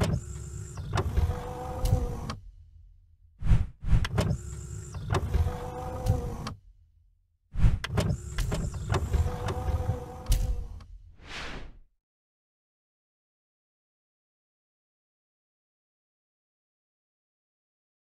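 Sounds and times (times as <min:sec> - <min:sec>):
mechanical motor whirring: 0:00.0 - 0:02.4, 0:03.9 - 0:06.6, 0:07.8 - 0:10.8
mechanical clunks: 0:07.8 - 0:10.9.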